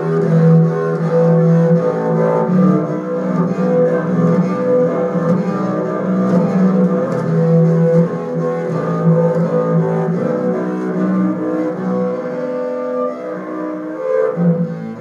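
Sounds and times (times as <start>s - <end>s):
bowed double bass: 0.0s - 15.0s.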